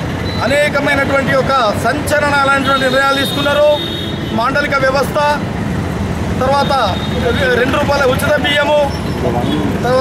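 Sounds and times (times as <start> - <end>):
man speaking: 0.4 - 5.5, 6.4 - 10.0.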